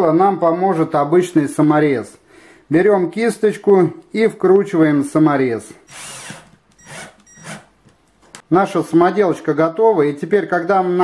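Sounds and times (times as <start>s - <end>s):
cordless drill driving screw: 5.9s - 7.7s.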